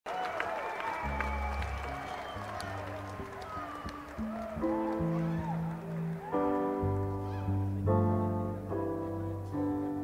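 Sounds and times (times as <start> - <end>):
scattered clapping: 0.1 - 6.3
audience cheering: 0.1 - 7.6
live band playing: 0.9 - 10.0.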